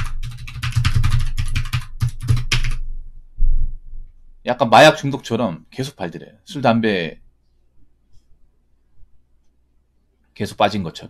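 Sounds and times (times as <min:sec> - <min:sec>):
computer keyboard typing: 0:00.0 - 0:02.8.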